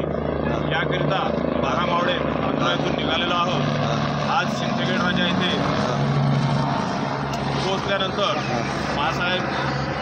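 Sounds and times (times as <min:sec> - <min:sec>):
aircraft engine drone overhead: 0:00.0 - 0:10.0.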